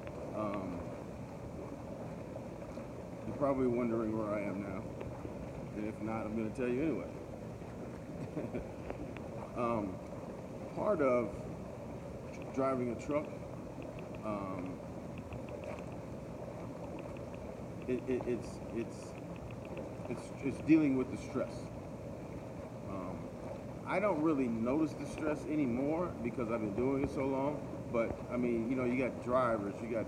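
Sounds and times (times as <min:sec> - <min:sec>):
hot tub jets churning water: 0:00.0 - 0:30.0.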